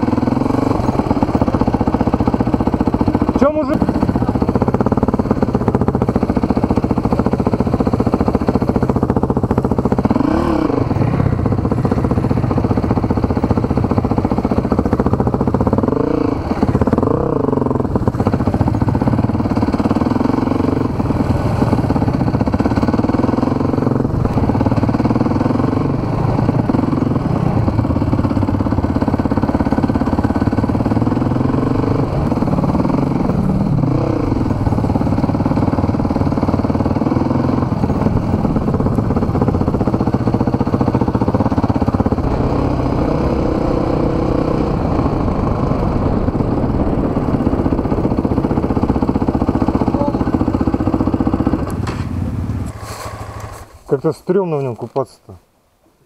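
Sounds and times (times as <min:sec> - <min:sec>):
dirt bike engine running: 0:00.0 - 0:54.8.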